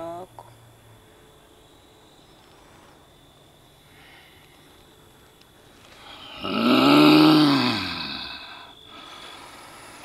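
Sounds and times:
man groaning: 6.2 - 8.5.

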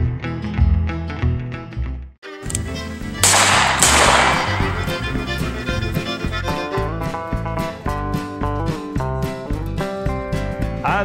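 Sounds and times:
country music: 0.0 - 11.0
loud sharp cracks with hiss: 3.2 - 5.8.

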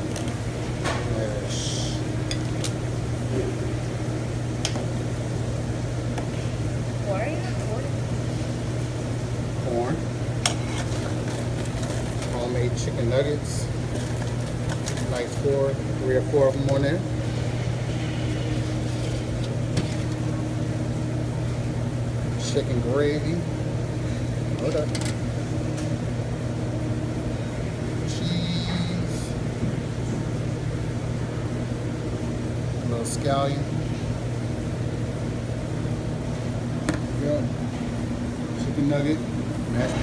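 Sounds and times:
low machine hum: 0.0 - 40.0.

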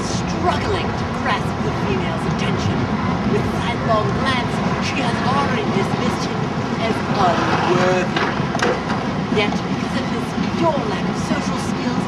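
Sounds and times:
indistinct voices talking: 0.0 - 12.0
low outdoor background rumble: 0.0 - 12.0.

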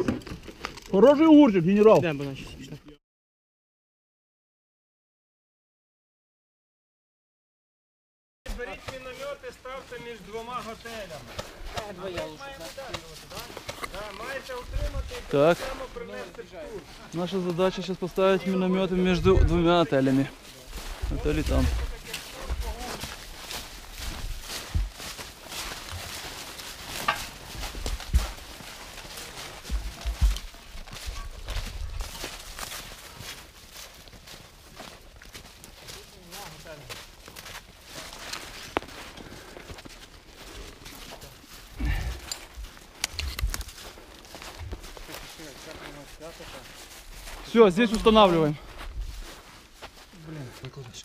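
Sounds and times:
footsteps crunching on snow and leaves: 8.5 - 51.0.

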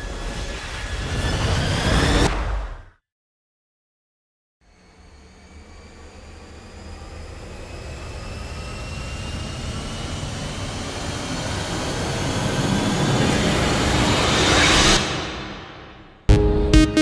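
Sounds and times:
rising build-up sound effect: 12.4 - 17.0.

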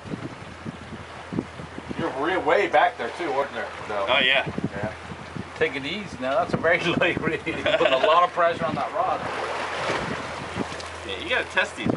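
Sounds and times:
boat motor humming: 0.0 - 11.9
wind buffeting microphone: 0.0 - 11.9.

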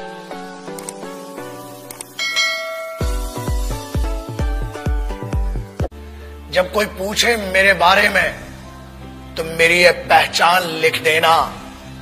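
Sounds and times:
plucked intro music: 0.4 - 6.0
quick clicks: 0.7 - 1.1, 1.8 - 2.2
bright bell chime: 2.2 - 3.6.

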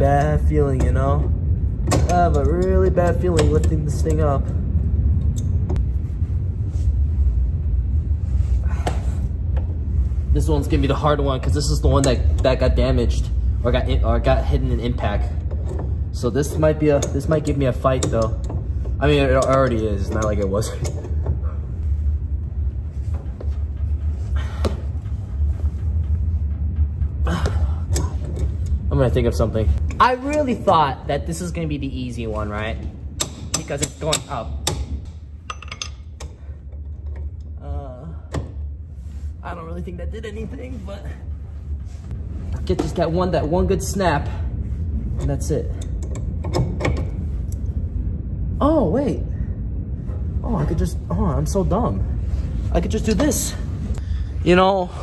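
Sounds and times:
steady low hum: 0.0 - 55.0
steady low rumble: 0.0 - 55.0.

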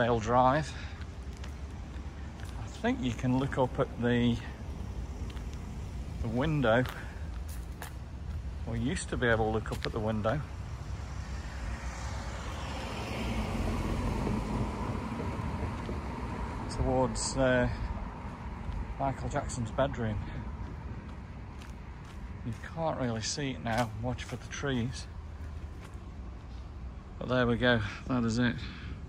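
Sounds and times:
car road and engine noise: 0.0 - 29.0
low street rumble: 0.0 - 29.0.

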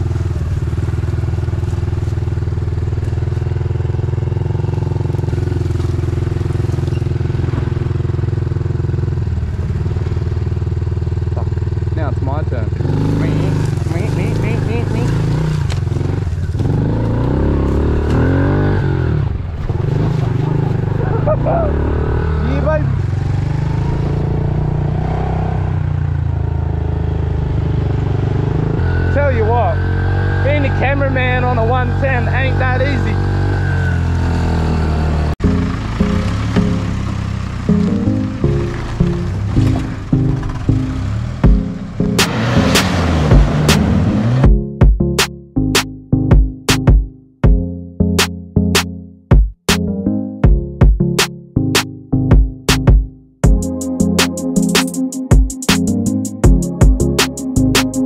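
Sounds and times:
dirt bike engine: 0.0 - 44.5
voices: 11.4 - 15.2, 20.3 - 23.0, 28.9 - 33.4.

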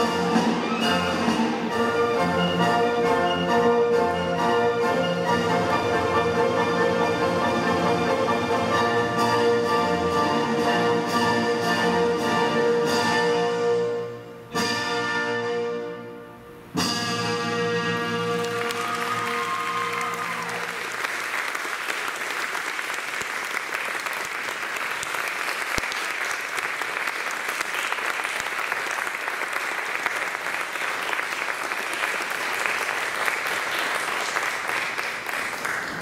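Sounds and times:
audience applauding: 18.2 - 36.0.

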